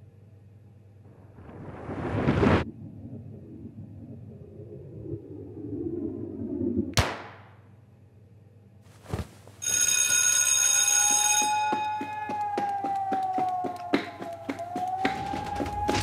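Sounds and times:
electric bell ringing: 9.6 - 12.6.

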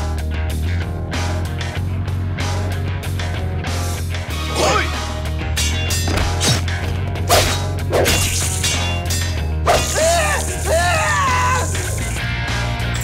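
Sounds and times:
backing music with steady bass: 0.0 - 13.0
sword swishes and hits: 5.6 - 6.7, 7.3 - 10.0.

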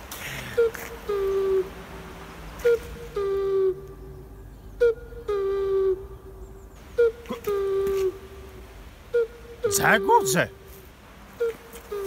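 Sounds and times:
cuckoo calling: 0.0 - 12.0.

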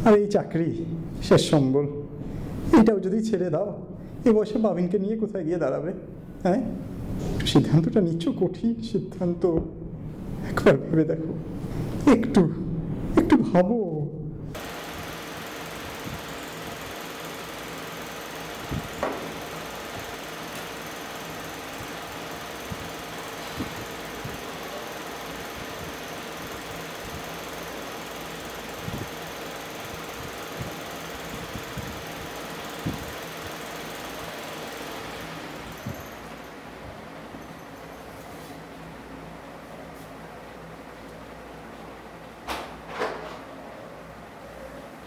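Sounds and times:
electric fan whirring: 0.0 - 45.0.

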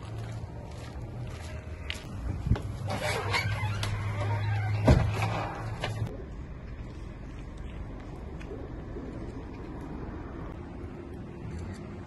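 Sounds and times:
footsteps on hard ground: 0.0 - 2.9
low rumble and hum: 3.6 - 12.0.

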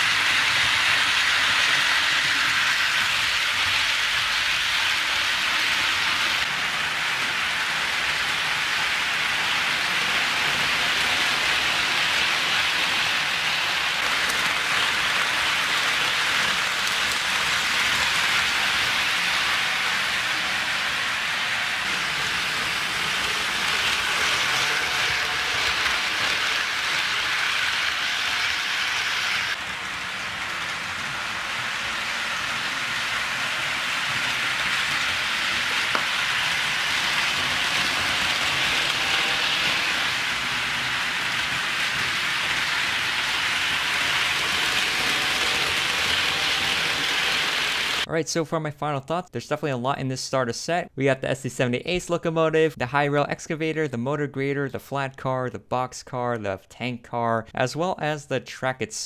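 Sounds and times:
model train wheels rattling on rails: 0.0 - 48.1.

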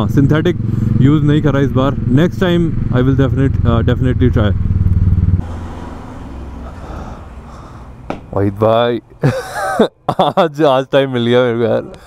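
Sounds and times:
motorcycle engine thumping: 4.5 - 5.4, 8.0 - 8.4.

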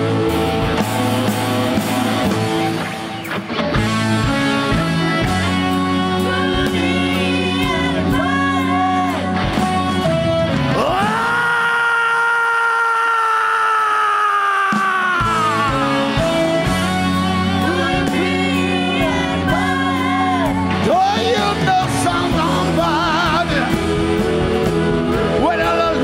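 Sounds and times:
live rock band: 0.0 - 26.0
wavering electric guitar: 0.0 - 26.0.

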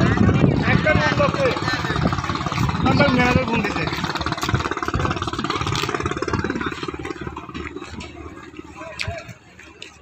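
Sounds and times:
engine running: 0.0 - 10.0
people talking: 0.0 - 10.0.

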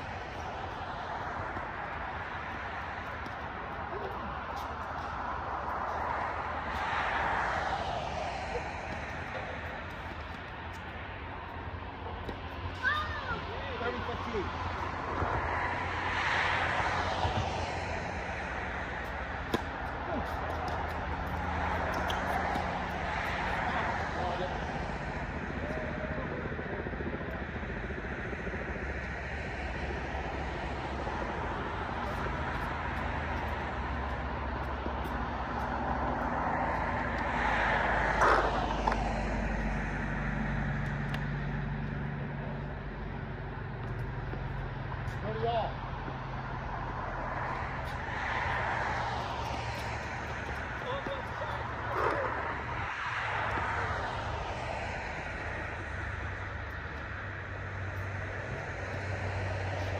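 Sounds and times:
road traffic hum: 0.0 - 59.9
vehicles passing: 0.0 - 59.9.

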